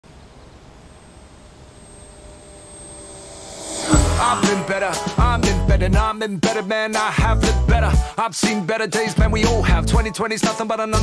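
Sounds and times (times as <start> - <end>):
model plane motor whining: 0.3 - 4.8.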